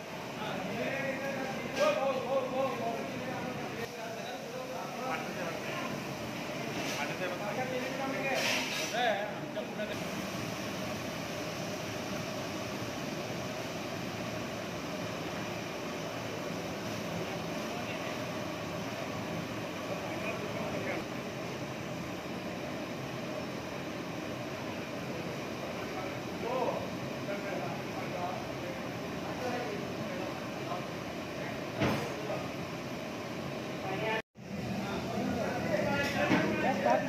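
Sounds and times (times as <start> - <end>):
kitchen background noise: 0.0 - 10.2, 33.7 - 37.0.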